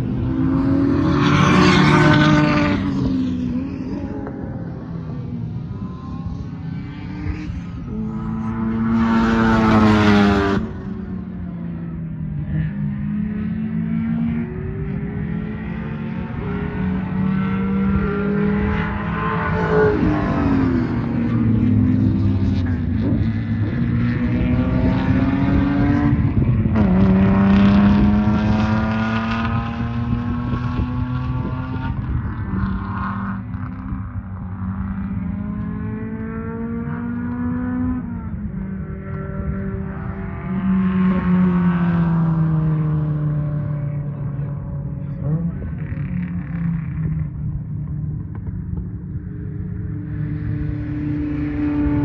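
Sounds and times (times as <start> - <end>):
race car engines accelerating: 0.0 - 52.0.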